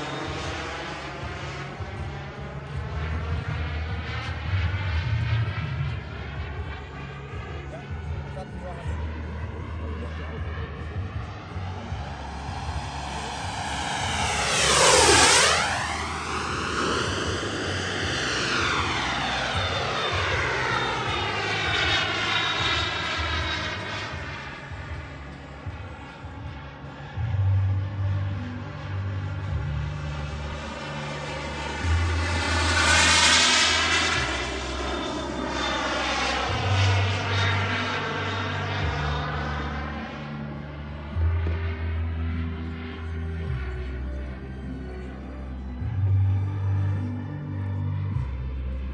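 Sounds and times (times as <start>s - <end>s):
jet turbine engines whistling past: 0.0s - 48.9s.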